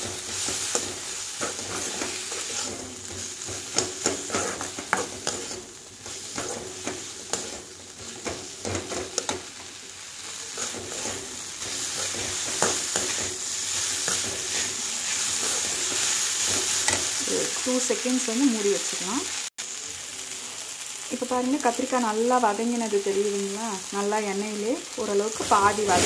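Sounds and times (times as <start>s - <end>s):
metal spatula scraping a pan: 0.0s - 9.7s, 10.4s - 17.2s, 25.4s - 26.0s
eggplant sizzling in oil: 0.0s - 26.0s.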